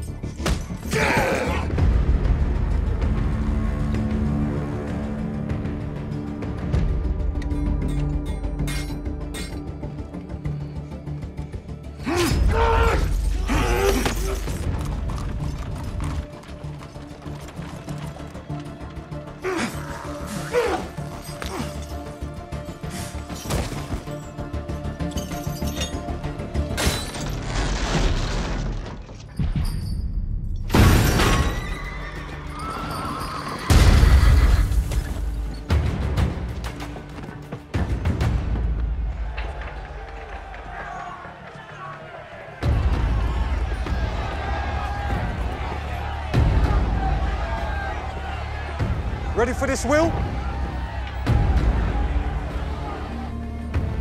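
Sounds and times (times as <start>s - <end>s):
film score music: 0.0s - 54.0s
indistinct shouting voices: 39.4s - 53.7s.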